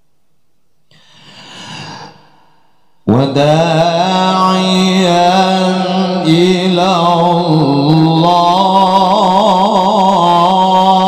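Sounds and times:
breath into a microphone: 0.9 - 3.0
melodic recitation: 3.1 - 11.0.

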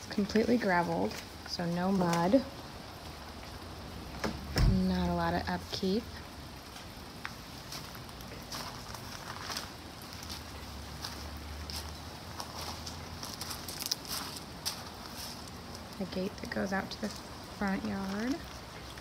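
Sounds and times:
footsteps crunching on gravel: 6.7 - 15.9.

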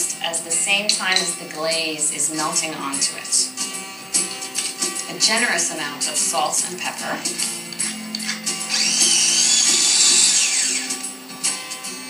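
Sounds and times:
background music: 0.0 - 12.0
food processor motor whirring: 7.4 - 11.1.

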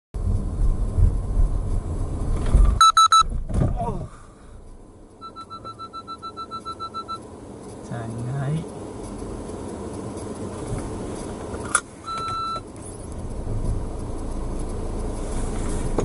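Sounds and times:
car engine and road rumble: 0.2 - 16.0
tyres sliding on braking: 0.3 - 16.0
rapid electronic beeping: 2.8 - 3.3, 5.2 - 7.2.

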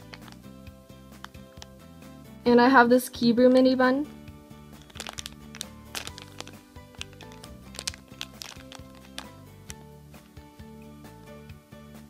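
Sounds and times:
background music: 0.0 - 12.0
plastic bag crinkling: 4.8 - 9.7.

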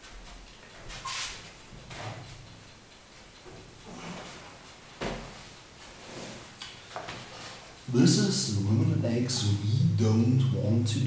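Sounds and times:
soft rustling: 3.2 - 7.8.

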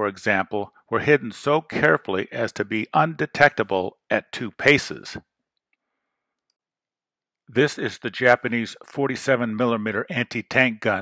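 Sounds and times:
synthesized narrator voice: 0.0 - 5.2, 7.6 - 11.0.

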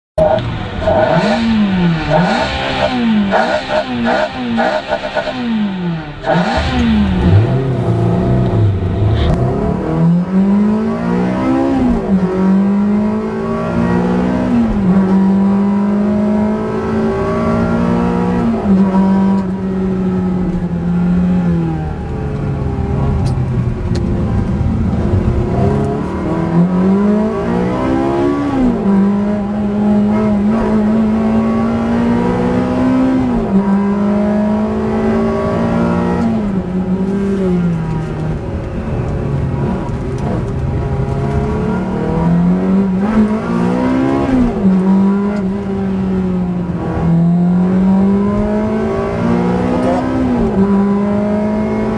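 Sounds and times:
car engine accelerating hard: 0.2 - 51.9.

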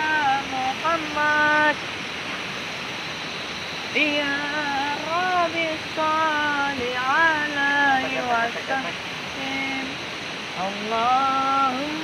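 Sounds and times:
person chanting in held notes: 0.0 - 1.8, 3.9 - 12.0
steady rushing hiss: 0.0 - 12.0.

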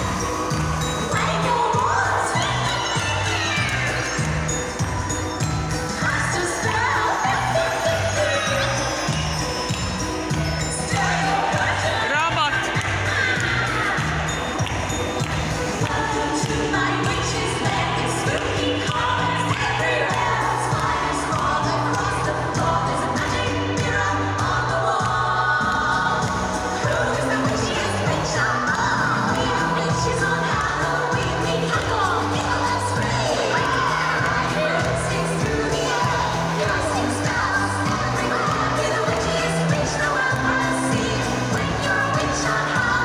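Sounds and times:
dance music with sung vocals: 0.0 - 43.0.

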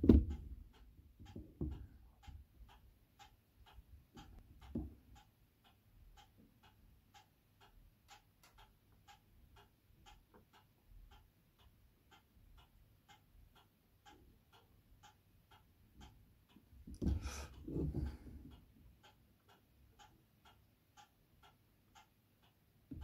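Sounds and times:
faint steady ticking: 0.0 - 23.0.

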